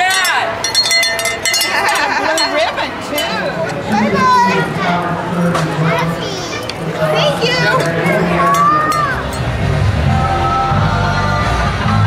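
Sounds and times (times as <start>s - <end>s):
adults and children chattering: 0.0s - 12.0s.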